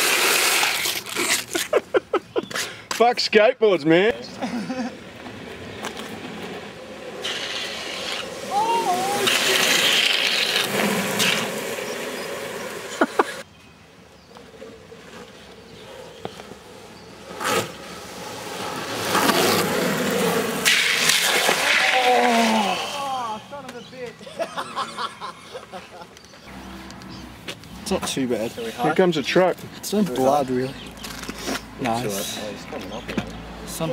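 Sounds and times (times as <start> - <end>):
longboard wheels sliding on asphalt: 0.0 - 1.8, 2.4 - 33.9
people shouting: 8.4 - 9.8.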